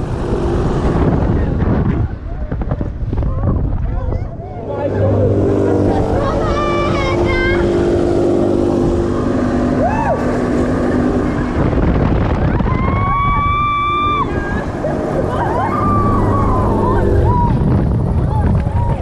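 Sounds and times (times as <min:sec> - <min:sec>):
fairground ride hum: 0:00.0 - 0:19.0
wind rushing over microphone: 0:00.0 - 0:19.0
riders screaming and yelping: 0:12.4 - 0:19.0.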